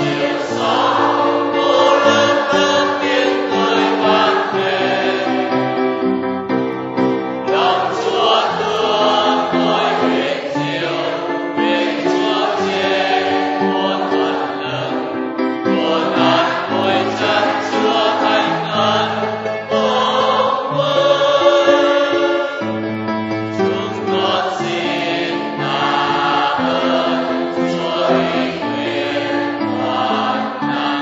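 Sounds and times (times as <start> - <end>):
choir singing a hymn: 0.0 - 6.4, 7.0 - 31.0.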